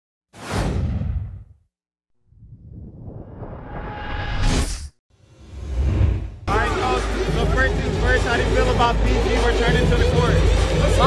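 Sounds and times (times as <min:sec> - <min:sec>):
deep rumble: 0:02.2 - 0:04.7
whoosh: 0:02.3 - 0:06.5.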